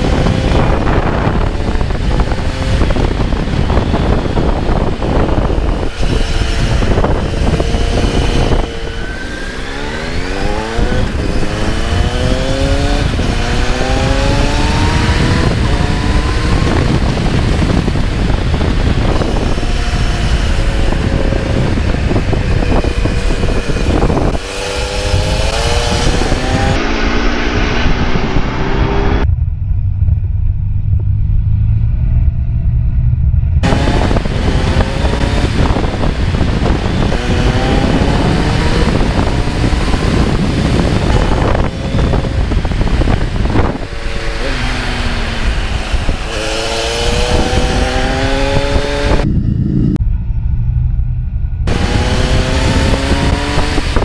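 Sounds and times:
motorcycle engine accelerating: 0:00.0 - 0:54.0
wind rush on camera: 0:00.0 - 0:54.0.

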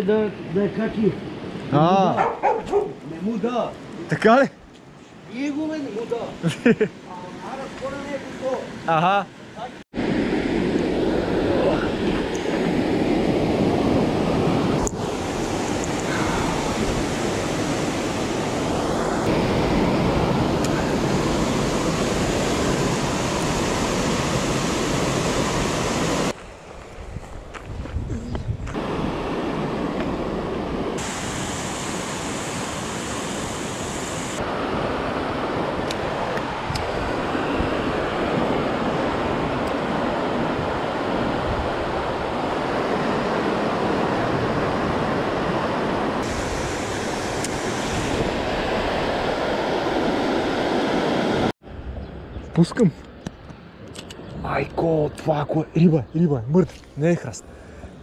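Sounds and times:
water rushing over weir: 0:10.0 - 0:26.4, 0:28.8 - 0:51.5.

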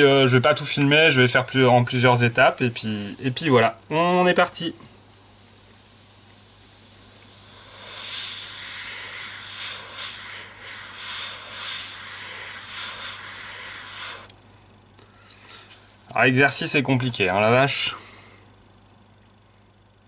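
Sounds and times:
airbrush spraying hiss: 0:05.0 - 0:14.3.

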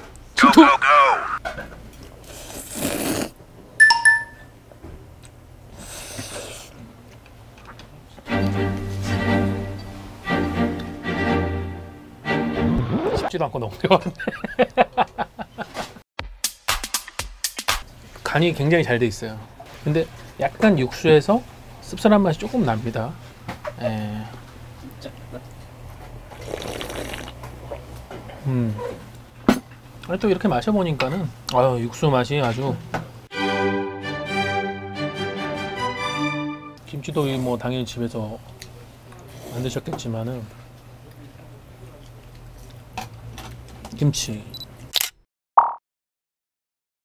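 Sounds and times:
noodles being slurped: 0:02.2 - 0:03.4, 0:26.3 - 0:27.4
short bright ding: 0:03.8 - 0:04.5
music: 0:08.3 - 0:13.3, 0:16.2 - 0:17.9, 0:33.3 - 0:36.8.

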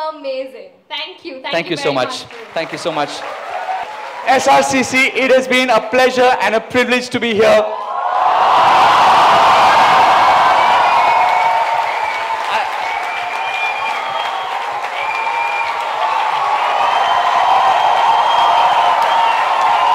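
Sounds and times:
crowd cheering and applauding: 0:01.6 - 0:05.7, 0:07.7 - 0:19.9.

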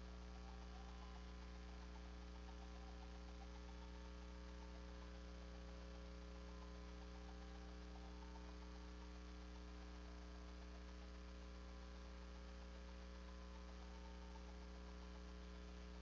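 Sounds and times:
electrical mains hum: 0:00.0 - 0:16.0.

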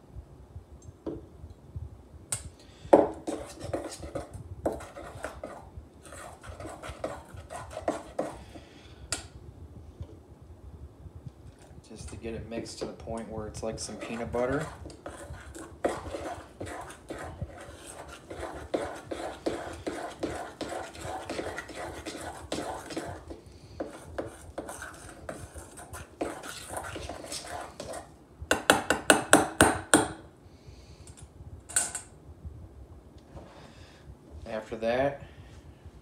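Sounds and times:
spoon scraping metal bowl: 0:13.7 - 0:28.1.

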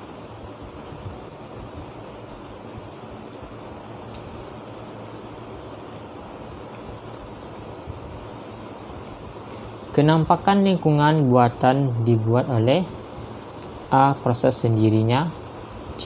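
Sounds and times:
low rumble and hiss: 0:00.0 - 0:16.0.

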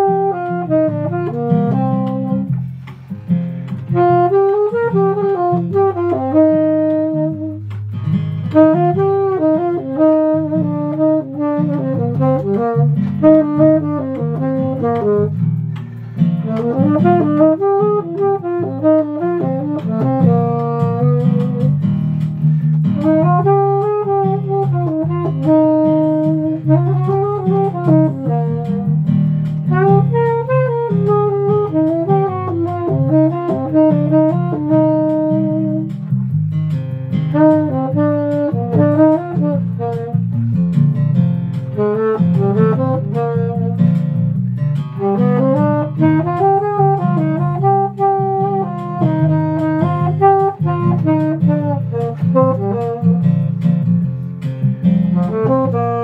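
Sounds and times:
low musical accompaniment: 0:00.0 - 0:56.0
saxophone melody: 0:00.0 - 0:56.0.

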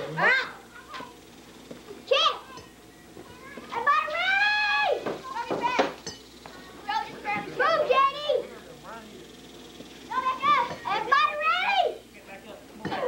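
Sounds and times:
children calling out: 0:00.2 - 0:01.2, 0:02.0 - 0:08.5, 0:10.1 - 0:12.0.

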